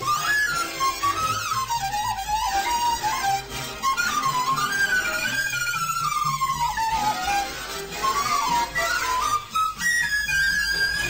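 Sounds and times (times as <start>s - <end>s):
recorder playing jazz notes: 0.0s - 11.0s.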